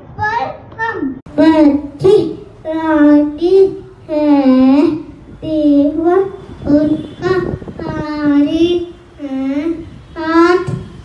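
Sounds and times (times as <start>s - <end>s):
young child singing: 0.2s - 11.0s.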